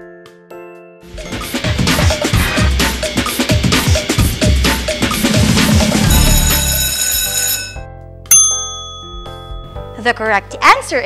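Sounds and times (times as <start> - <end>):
drum-backed countdown music: 1.1 - 7.0
bell-like ringing tone: 6.0 - 10.0.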